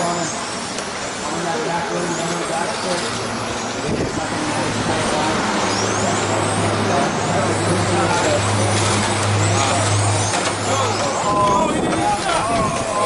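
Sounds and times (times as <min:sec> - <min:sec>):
loud noisy background: 0:00.0 - 0:13.0.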